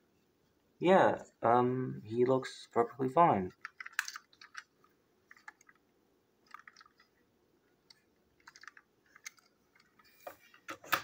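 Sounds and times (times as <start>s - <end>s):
plastic toy clicks and rustles: 3.5s - 5.8s, 6.4s - 7.1s, 7.9s - 10.1s.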